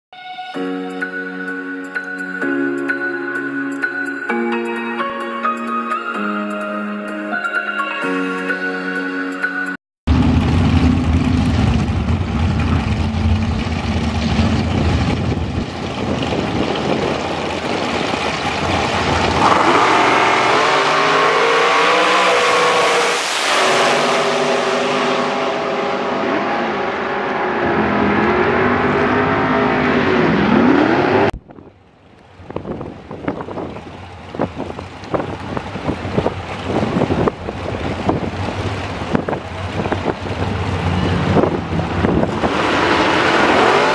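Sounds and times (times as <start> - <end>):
dragster engines racing: 10.1 - 31.4, 33.5 - 43.9.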